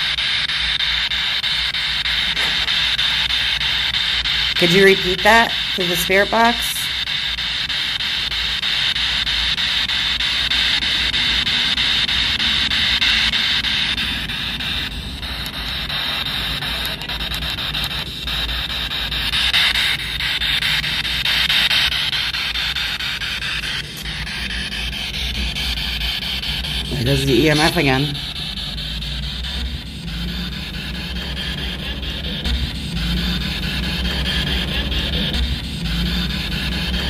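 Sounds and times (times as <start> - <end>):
radio static hiss: 0.0 - 37.0.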